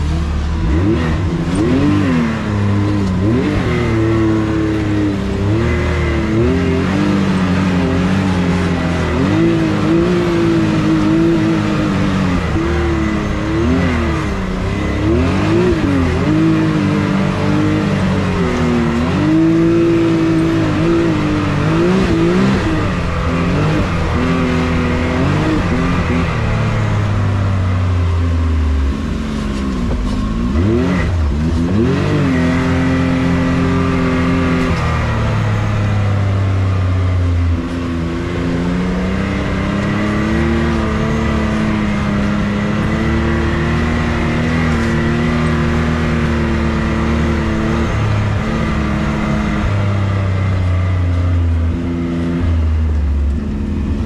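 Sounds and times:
engine revving: 0:00.0 - 0:54.0.

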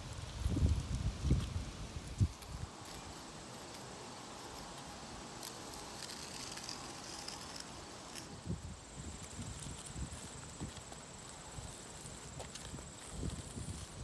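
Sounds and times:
chalk scraping on asphalt: 0:01.3 - 0:14.0.

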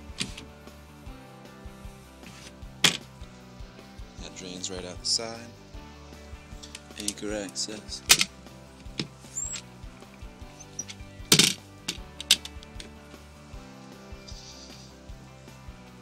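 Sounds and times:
hatch clacking shut: 0:00.2 - 0:00.4, 0:02.8 - 0:03.1, 0:08.0 - 0:09.6, 0:10.6 - 0:12.9
hatch latch clicking: 0:00.2 - 0:00.4, 0:08.1 - 0:08.3, 0:10.6 - 0:12.9.

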